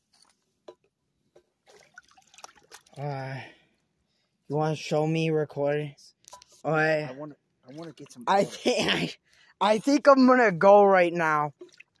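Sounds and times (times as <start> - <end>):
water splashing and dripping: 1.6 - 3.2, 7.6 - 8.6, 11.5 - 12.0.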